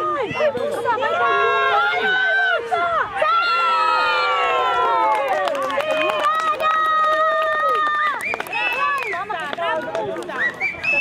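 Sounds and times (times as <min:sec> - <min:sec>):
people shouting and cheering: 0:00.0 - 0:11.0.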